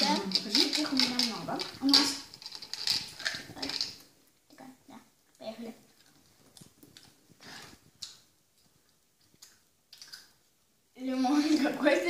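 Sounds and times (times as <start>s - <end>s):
jelly beans rattling in glass jar: 0.0s - 4.1s.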